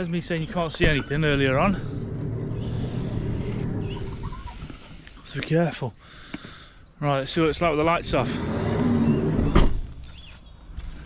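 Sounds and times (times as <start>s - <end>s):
van door shutting: 9.2s - 10.0s.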